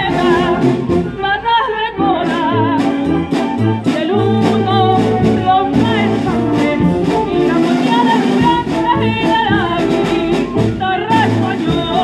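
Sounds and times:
vibrato melody: 0:00.0 - 0:12.0
wind band playing: 0:00.0 - 0:12.0.

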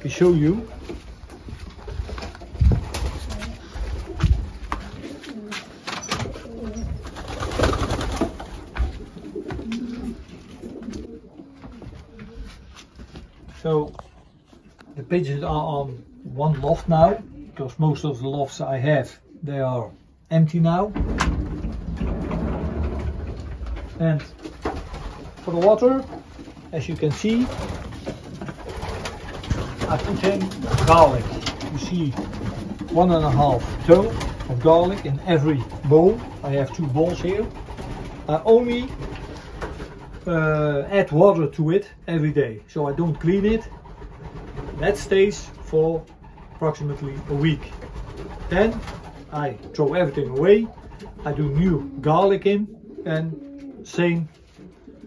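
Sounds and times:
pigeons cooing: 0:00.0 - 0:12.9, 0:14.1 - 0:17.8, 0:21.6 - 0:42.2, 0:42.8 - 0:55.0
heavy thumps: 0:00.5 - 0:12.0, 0:20.9 - 0:25.2.

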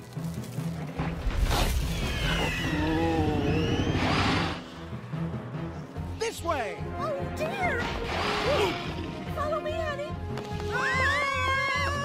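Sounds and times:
dramatic cartoon score: 0:01.0 - 0:12.0.

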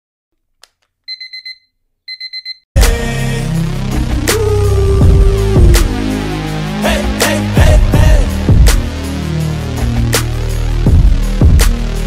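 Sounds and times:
digital alarm clock beeping: 0:01.1 - 0:02.6
loud music: 0:02.8 - 0:12.0.

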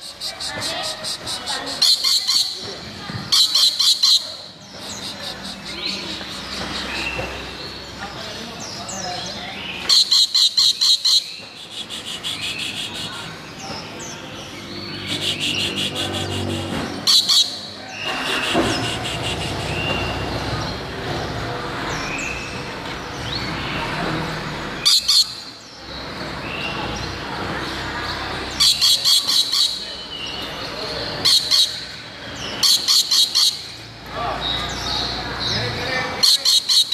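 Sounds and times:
lorikeet calling shrill notes: 0:03.3 - 0:04.3, 0:09.9 - 0:13.1, 0:15.0 - 0:20.1, 0:32.6 - 0:33.8.

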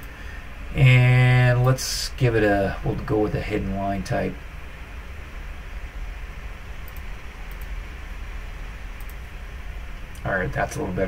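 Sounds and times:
low background hum: 0:00.0 - 0:11.0
mouse clicks: 0:06.8 - 0:07.8, 0:09.0 - 0:09.2.

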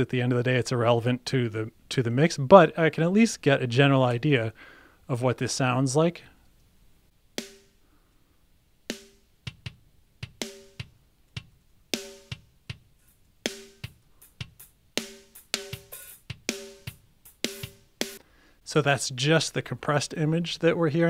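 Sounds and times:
ringing snare drum: 0:07.4 - 0:07.8, 0:08.9 - 0:12.9, 0:13.5 - 0:18.2
hi-hats: 0:08.9 - 0:18.2
kick drum: 0:09.5 - 0:11.6, 0:13.8 - 0:14.6.

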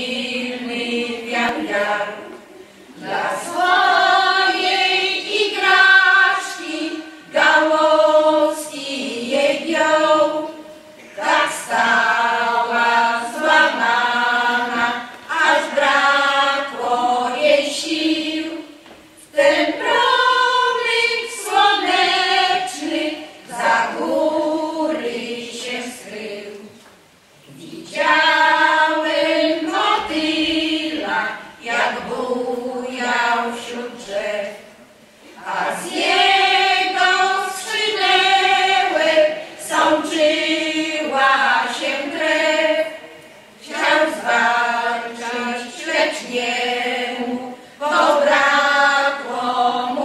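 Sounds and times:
women's folk choir singing: 0:00.0 - 0:50.0.

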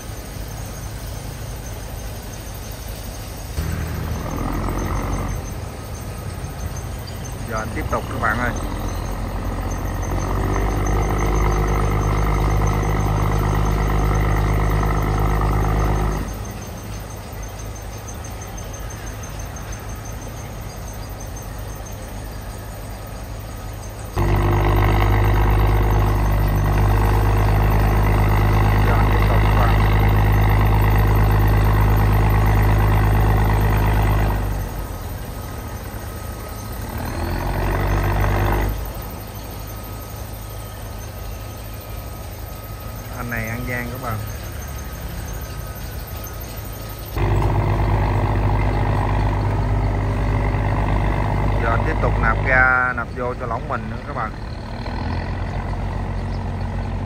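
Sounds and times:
diesel engine revving: 0:03.6 - 0:21.1, 0:21.7 - 0:57.0.

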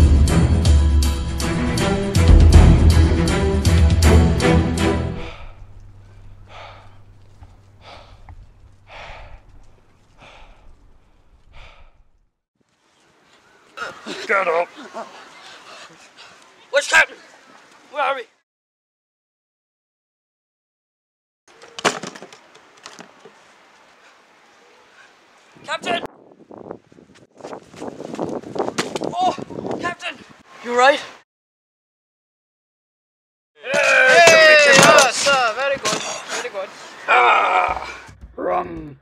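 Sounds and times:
person breathing heavily: 0:05.1 - 0:05.7, 0:06.4 - 0:07.1, 0:07.8 - 0:08.3, 0:08.9 - 0:09.5, 0:10.2 - 0:10.8, 0:11.4 - 0:12.1
wind rumble on microphone: 0:07.4 - 0:12.2, 0:25.6 - 0:30.4
scuffling and thuds in sand: 0:27.0 - 0:29.7.

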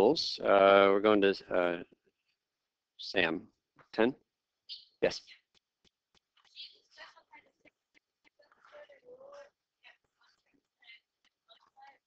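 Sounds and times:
faint distant speaking voice: 0:00.0 - 0:01.8.

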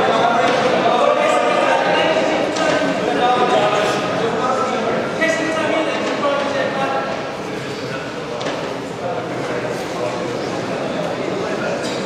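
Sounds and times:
crowd voices calling out: 0:00.0 - 0:07.4.

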